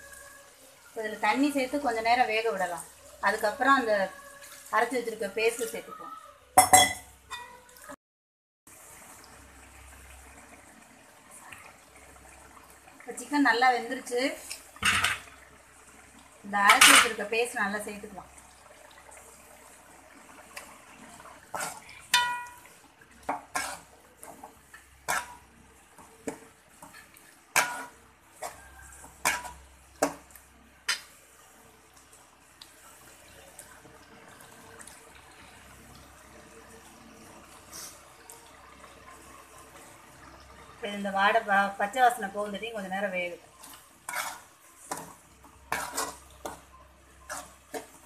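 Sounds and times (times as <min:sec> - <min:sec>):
faint steady background noise: 0:08.7 - 0:48.0
metal ladle scraping metal pan: 0:21.5 - 0:22.7, 0:23.3 - 0:23.9, 0:24.7 - 0:25.4, 0:26.8 - 0:29.6, 0:44.0 - 0:46.6.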